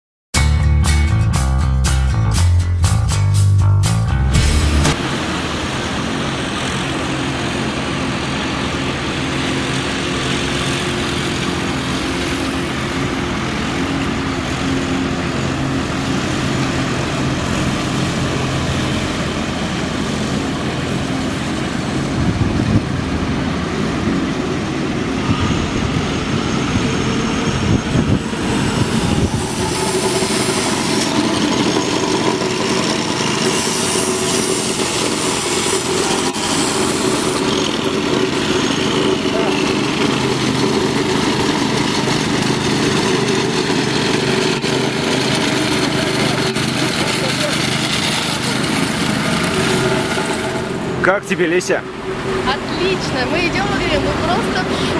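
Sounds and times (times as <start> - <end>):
road roller working: 0.4 - 54.9
construction machinery engines running: 0.6 - 54.9
plate compactor petrol engine: 4.1 - 54.9.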